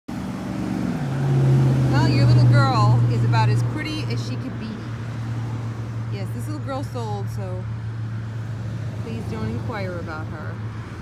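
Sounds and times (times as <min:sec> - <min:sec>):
woman's voice: 0:01.9 - 0:05.0, 0:06.1 - 0:07.8, 0:09.0 - 0:10.6.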